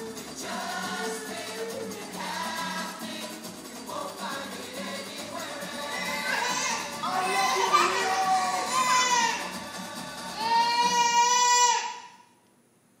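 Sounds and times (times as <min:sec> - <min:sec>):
music: 0:00.0 - 0:11.8
child singing: 0:04.0 - 0:09.6.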